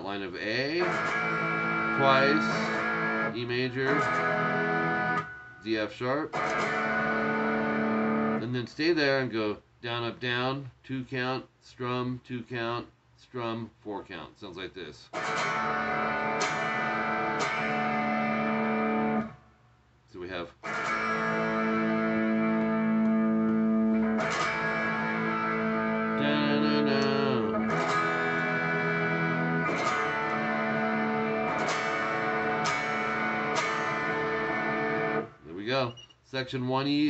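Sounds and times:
electric guitar strumming chords: 0:00.7 - 0:05.7, 0:06.3 - 0:08.4, 0:15.2 - 0:19.4, 0:20.6 - 0:35.4.

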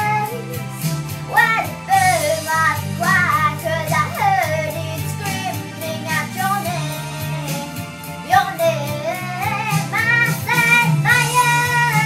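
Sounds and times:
girl singing: 0:00.0 - 0:00.6, 0:01.3 - 0:12.0
low instrumental accompaniment: 0:00.0 - 0:12.0.

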